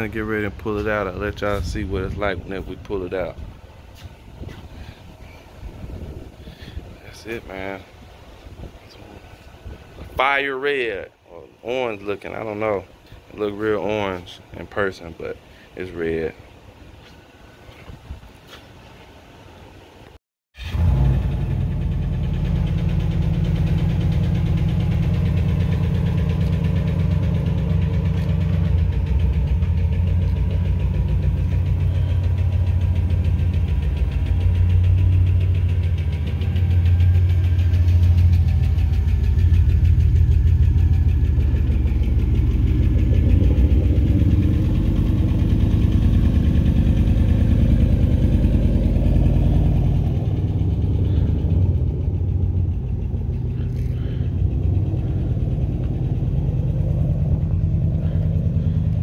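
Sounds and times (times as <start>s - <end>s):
car engine rumbling: 0.0s - 59.0s.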